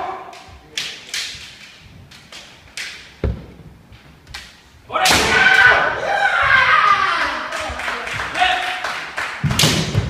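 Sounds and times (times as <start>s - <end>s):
bamboo swords clacking: 0.0s - 5.4s.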